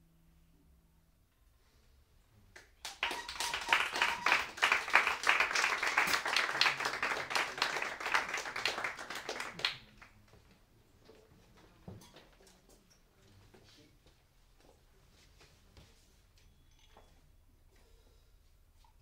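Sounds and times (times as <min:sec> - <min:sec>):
audience applause: 0:02.8 - 0:10.1.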